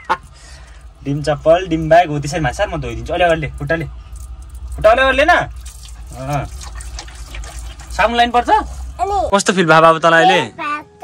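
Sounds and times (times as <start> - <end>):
water running from hose splashing: 1.0 - 9.9.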